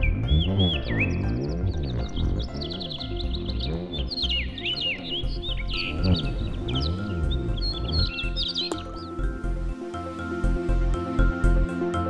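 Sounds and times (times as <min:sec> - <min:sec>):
background music: 0:00.0 - 0:12.0
birds chirping: 0:00.0 - 0:12.0.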